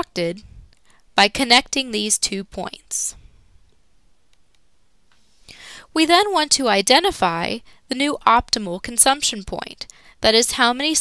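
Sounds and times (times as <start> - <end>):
woman speaking: 0.0 - 0.5, 1.2 - 3.2, 5.9 - 11.0.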